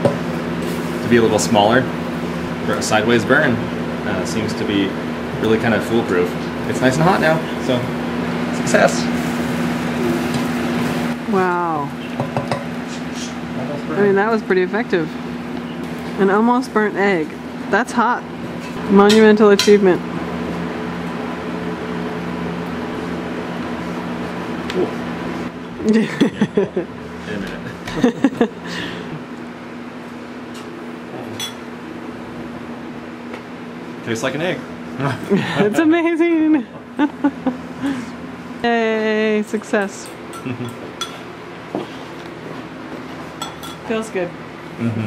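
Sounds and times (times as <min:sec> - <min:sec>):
steady low hum: 0:00.0 - 0:45.0
man laughing: 0:25.8 - 0:29.3, 0:35.0 - 0:35.9, 0:37.0 - 0:38.2, 0:40.4 - 0:40.8, 0:44.8 - 0:45.0.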